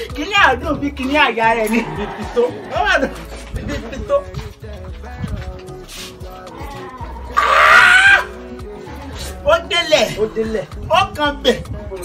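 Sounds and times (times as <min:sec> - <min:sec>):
background music with held notes: 0:00.0 - 0:12.0
loud pitched cry: 0:06.6 - 0:08.4.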